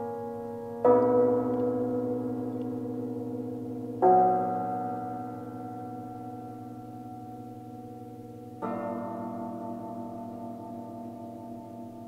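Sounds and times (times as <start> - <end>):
cimbalom chords ringing: 0.0 - 12.0.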